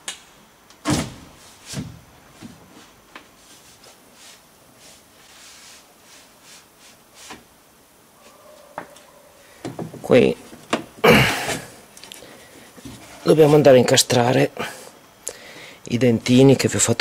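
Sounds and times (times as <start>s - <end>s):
soft rubbing and sliding: 1.4s - 7.4s, 12.4s - 13.7s.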